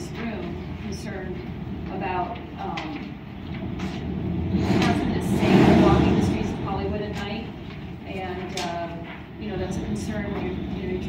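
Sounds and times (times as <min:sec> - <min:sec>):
passing vehicle rumble: 0:01.0 - 0:08.6.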